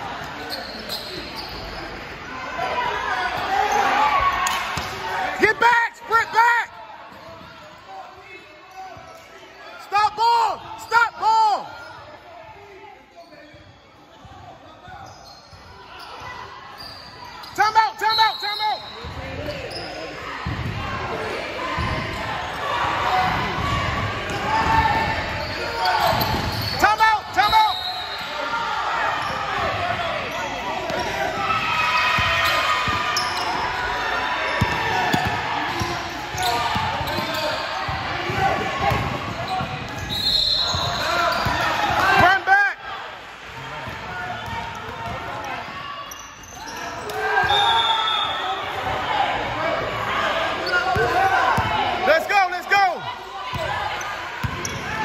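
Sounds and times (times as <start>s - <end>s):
sneaker squeaks: 0.3s - 2.2s, 10.8s - 12.4s, 13.0s - 20.7s, 23.2s - 42.2s, 43.6s - 49.0s, 50.5s - 51.7s, 53.5s - 55.0s
echoing voices in hall: 17.3s - 55.0s.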